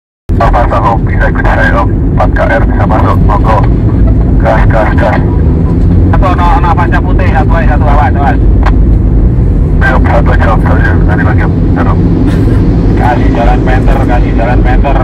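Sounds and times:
road and engine rumble in car: 0.3s - 15.0s
people talking: 0.4s - 3.7s, 4.3s - 5.3s, 6.1s - 8.4s, 9.8s - 12.0s, 13.0s - 15.0s.

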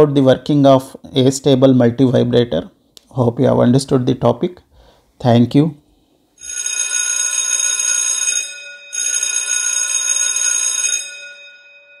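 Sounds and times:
bell ringing: 6.4s - 12.0s.

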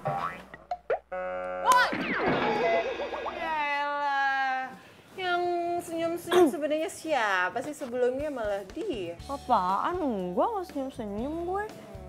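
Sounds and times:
boing-like rising glide: 1.8s - 3.8s.

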